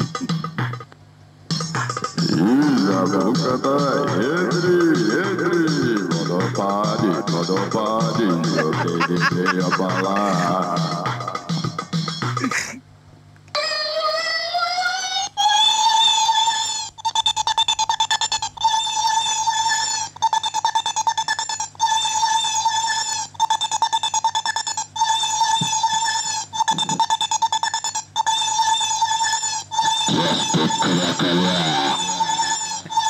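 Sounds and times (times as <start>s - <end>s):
synthesized electronic tone: 30.1s - 33.0s.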